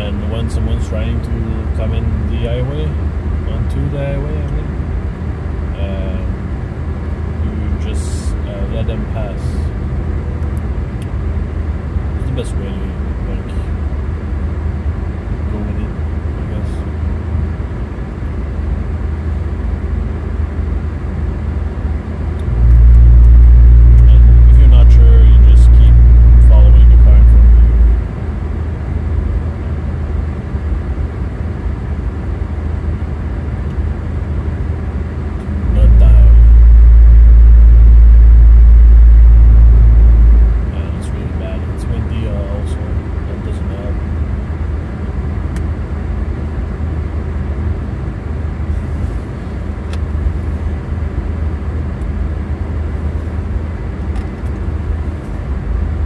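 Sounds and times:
road and tyre noise in car: 0.0s - 56.0s
loud deep rumble: 18.9s - 30.8s, 32.7s - 43.4s.

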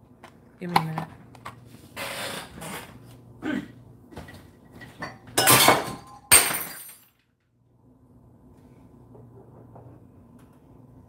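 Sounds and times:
glass breaking: 5.4s - 7.2s.

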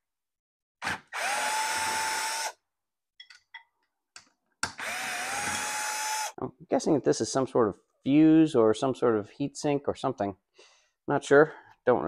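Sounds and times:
power drill whining: 0.8s - 2.6s, 4.7s - 6.4s.

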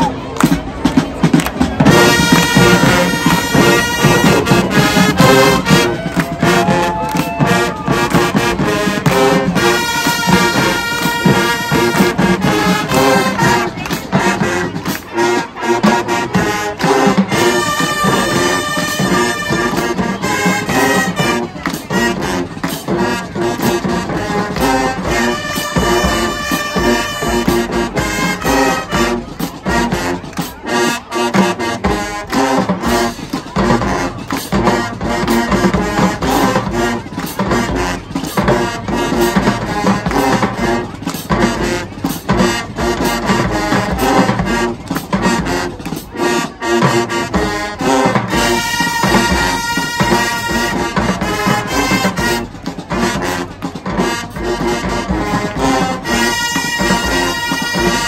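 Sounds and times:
marching band playing brass tune: 0.0s - 58.0s.

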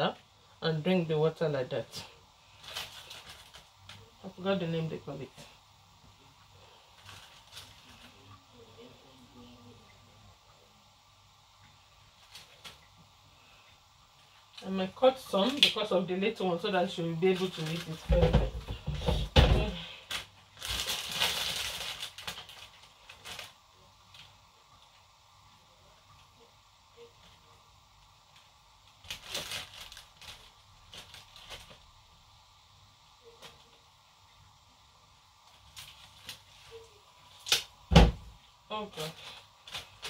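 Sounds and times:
corn husks tearing and rustling: 2.4s - 4.1s, 17.2s - 18.1s, 19.7s - 24.4s, 28.4s - 32.0s, 35.5s - 37.8s
sharp cracks and knocks: 37.4s - 38.3s.

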